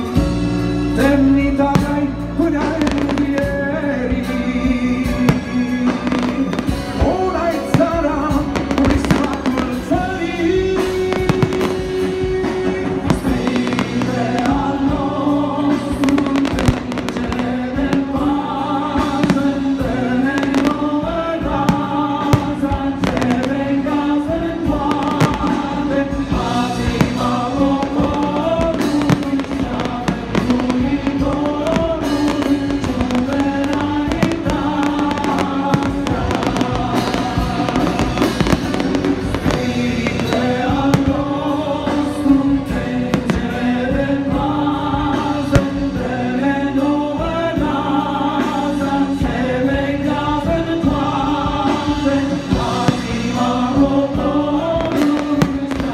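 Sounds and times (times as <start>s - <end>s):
fireworks bangs and crackles: 0.0s - 46.0s, 50.8s - 55.9s
loud music: 0.0s - 55.9s.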